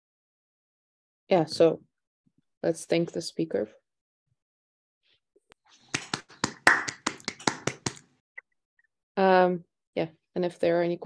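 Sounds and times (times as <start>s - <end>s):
hands clapping: 5.9s - 8.1s.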